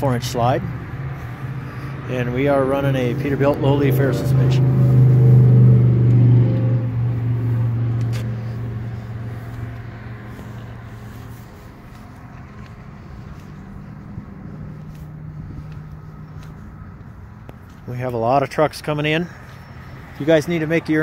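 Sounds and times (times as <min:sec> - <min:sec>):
faint outdoor background: 0:00.0 - 0:21.0
vehicle engine humming: 0:00.0 - 0:21.0.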